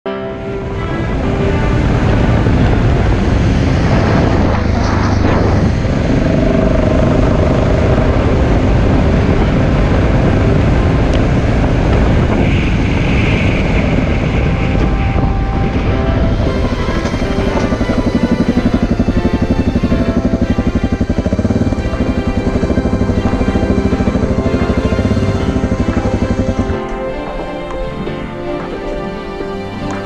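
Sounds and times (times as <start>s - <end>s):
wind noise on microphone: 0.1s - 30.0s
vehicle engine running: 0.5s - 30.0s
tyres on gravel road: 0.8s - 30.0s.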